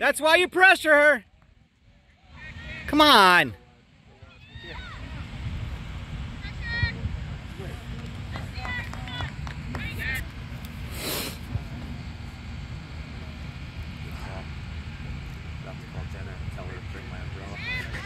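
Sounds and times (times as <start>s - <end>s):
youth players shouting: 4.2s - 5.2s
wind rumbling on microphone: 4.4s - 12.1s.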